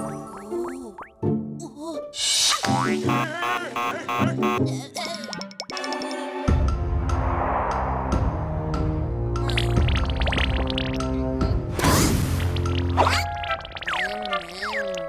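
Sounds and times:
cartoon music: 2.5s - 6.4s, 12.9s - 15.0s
rising swish: 6.9s - 9.2s.

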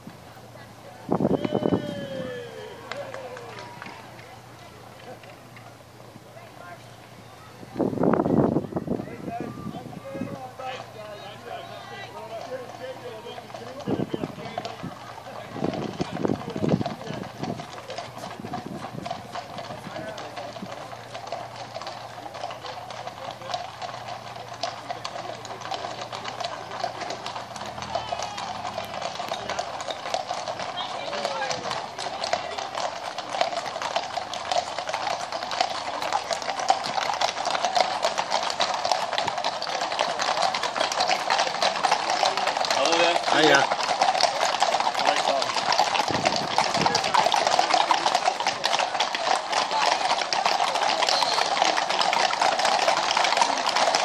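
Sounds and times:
horse hooves clip-clopping on road: 0.0s - 54.0s
people's voices: 0.0s - 54.0s.

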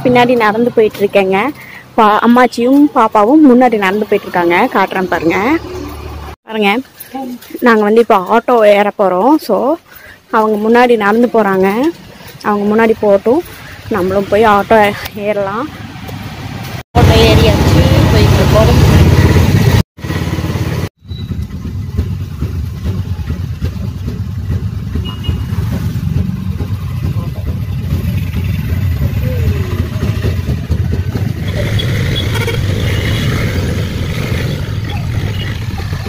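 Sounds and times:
auto-rickshaw engine running: 0.0s - 7.5s, 16.1s - 36.0s
road noise: 0.0s - 36.0s.

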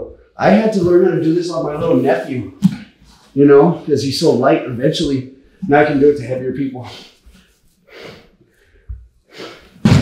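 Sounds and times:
body landing on mat: 9.8s - 10.0s.

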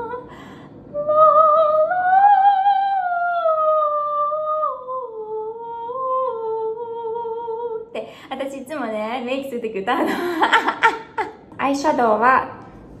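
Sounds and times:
woman singing long wordless note: 0.9s - 8.2s
woman laughing: 9.9s - 11.4s.

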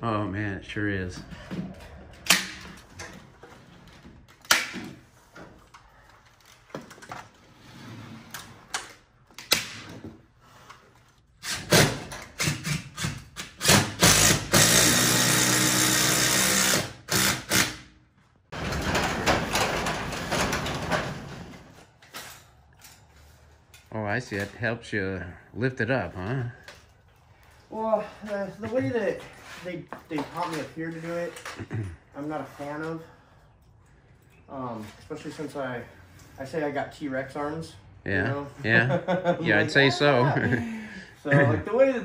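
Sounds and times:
power drill whining: 14.0s - 17.7s.

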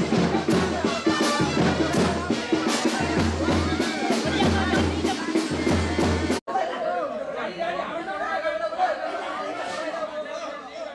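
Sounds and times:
news music with drum beat: 0.0s - 6.4s
crowd voices overlapping: 0.0s - 10.9s.

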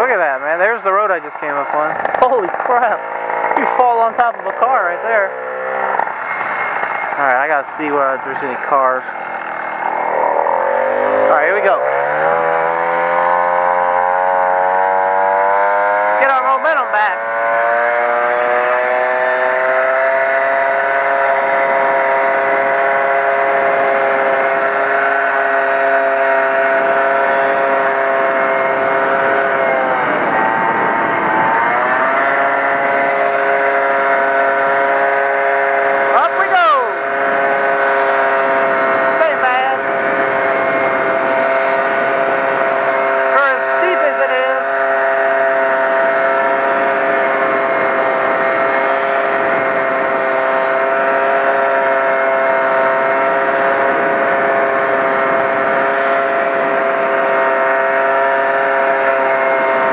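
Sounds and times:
moped engine pulling away: 1.6s - 16.3s, 16.9s - 59.9s.

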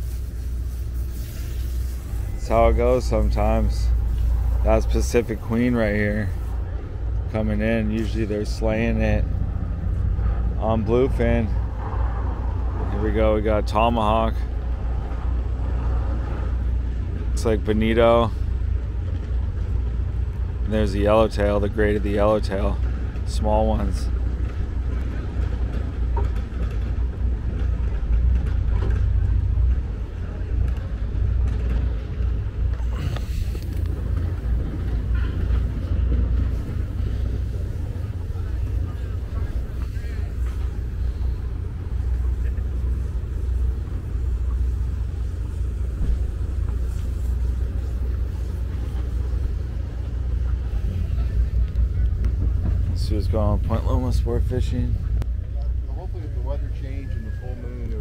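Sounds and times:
low harbor rumble: 0.0s - 58.0s.

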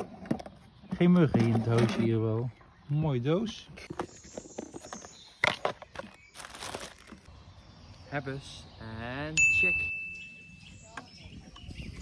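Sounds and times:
plastic bag crinkling: 6.3s - 7.3s.

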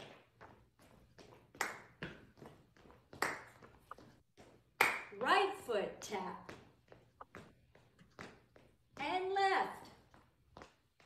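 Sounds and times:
shoes tapping on hardwood floor: 6.0s - 9.2s.

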